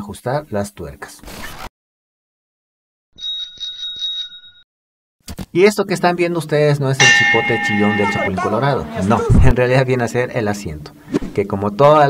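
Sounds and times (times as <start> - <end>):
bicycle bell ringing: 3.2 - 4.6, 7.0 - 8.8.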